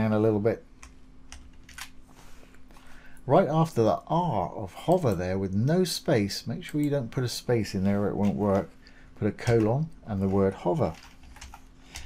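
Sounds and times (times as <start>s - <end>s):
computer keyboard keystrokes: 0.8s - 1.9s, 10.8s - 12.0s.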